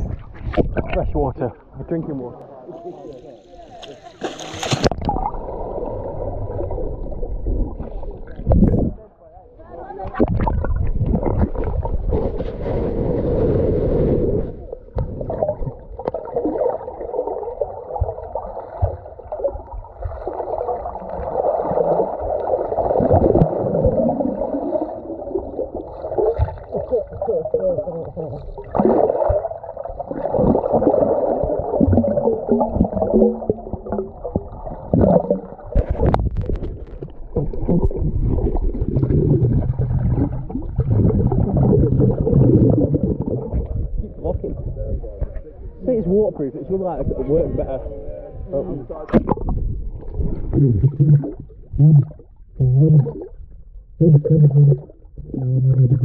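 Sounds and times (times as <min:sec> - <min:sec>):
underwater water churning and bubbling: 0:00.0 - 0:56.0.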